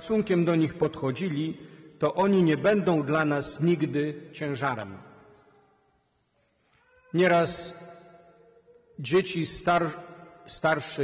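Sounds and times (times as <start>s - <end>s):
preacher's voice reverberating: 0.0s - 5.3s, 7.1s - 11.0s.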